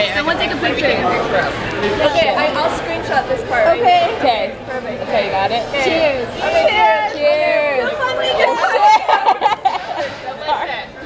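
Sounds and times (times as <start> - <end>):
people chattering excitedly: 0.0 - 11.0.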